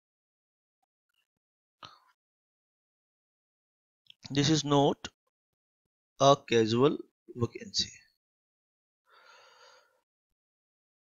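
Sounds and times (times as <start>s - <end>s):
man breathing in: 9.1s - 10.0s.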